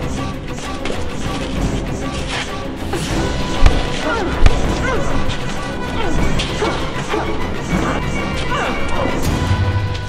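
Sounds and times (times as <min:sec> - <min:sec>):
background music: 0:00.0 - 0:10.0
fight hits and blows: 0:02.9 - 0:08.2.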